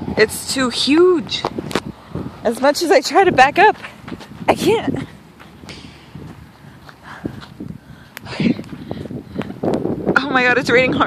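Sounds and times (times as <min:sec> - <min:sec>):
footsteps through dry grass: 0:03.7 - 0:09.9.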